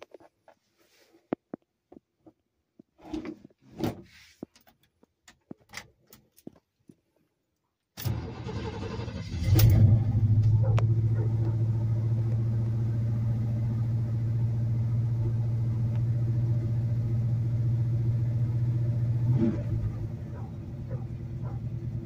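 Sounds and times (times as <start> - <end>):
engine fast idle: 8.0 - 14.1.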